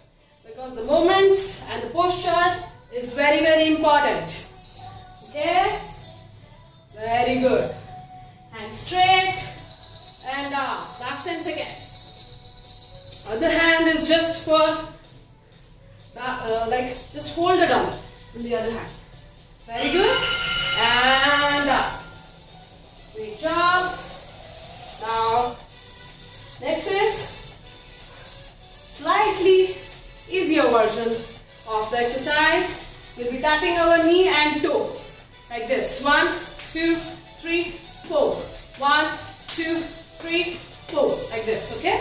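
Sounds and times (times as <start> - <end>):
faint background music: 0.0 - 42.0
high-pitched electronic tone: 19.8 - 22.3.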